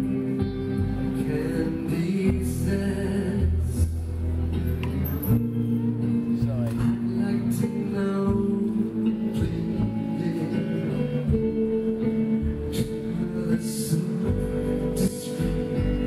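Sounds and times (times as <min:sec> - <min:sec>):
guitar: 0:00.0 - 0:16.0
man singing into microphone: 0:01.1 - 0:04.1, 0:04.8 - 0:16.0.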